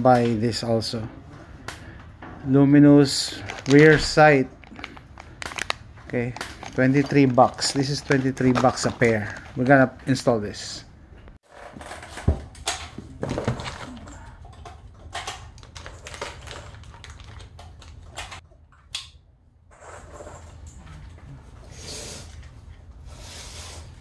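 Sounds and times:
packaging rustling: 0:03.0 - 0:10.3, 0:15.2 - 0:18.4.

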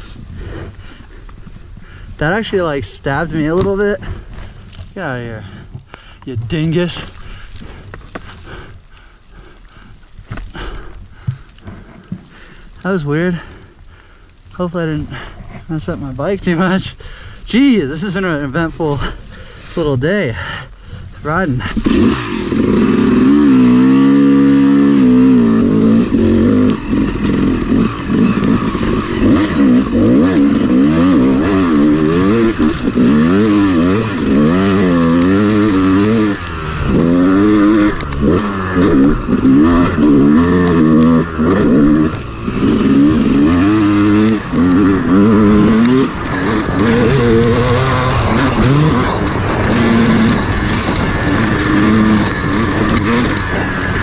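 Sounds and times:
dirt bike engine revving: 0:21.3 - 0:54.0.

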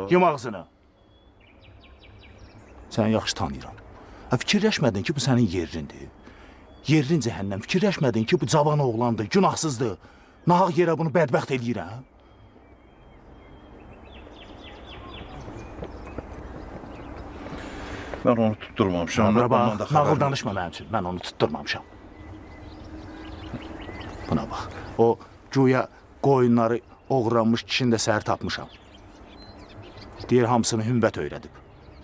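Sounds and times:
small bird chirping: 0:11.3 - 0:32.0
steady rustling: 0:14.6 - 0:18.3.

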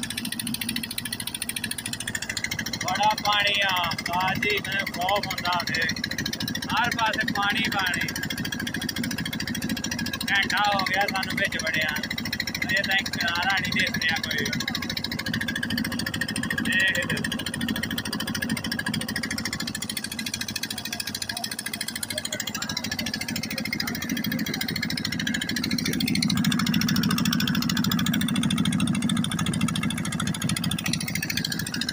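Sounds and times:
boat engine running: 0:00.0 - 0:31.9.

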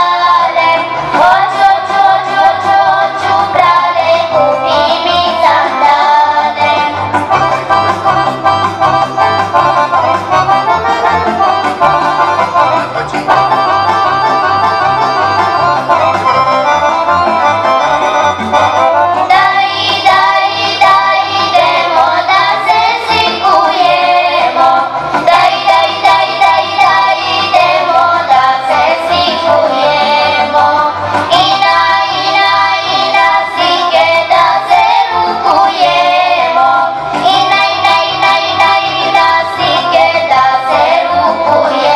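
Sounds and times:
accordion playing folk tune: 0:00.0 - 0:41.9.

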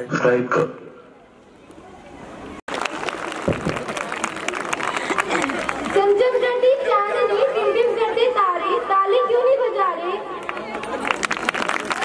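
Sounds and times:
crowd chatter: 0:00.9 - 0:12.0.

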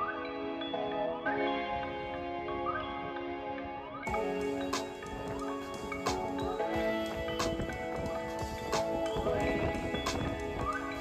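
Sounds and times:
sustained instrumental notes: 0:01.4 - 0:11.0.

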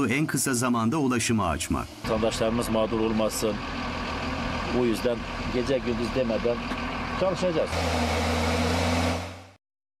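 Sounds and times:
heavy diesel engine humming: 0:00.0 - 0:09.6.

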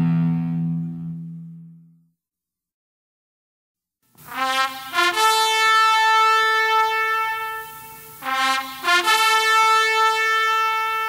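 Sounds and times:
ska-punk song with brass horns: 0:04.2 - 0:11.0.

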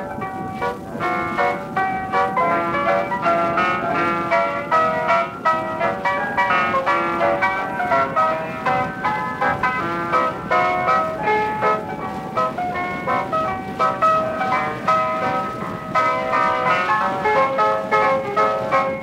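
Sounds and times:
instrumental music from old disc: 0:00.0 - 0:19.0.

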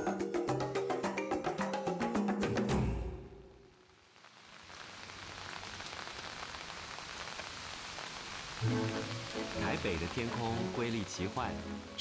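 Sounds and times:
music: 0:00.0 - 0:03.4, 0:08.6 - 0:12.0
rain on foliage: 0:03.5 - 0:12.0.

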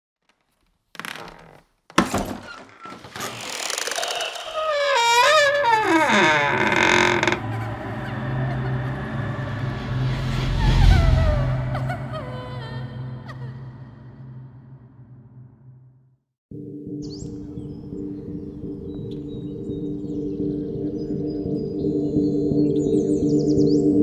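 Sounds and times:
wooden door creaking open: 0:00.2 - 0:07.7
low drone: 0:05.6 - 0:15.6.

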